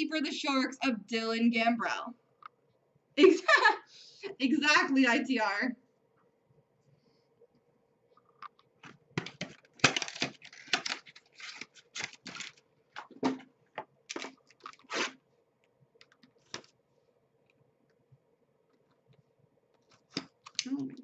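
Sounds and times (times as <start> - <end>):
faint steady hum: 0.0 - 21.0
packaging crackling and tearing: 9.2 - 13.1, 14.1 - 15.2.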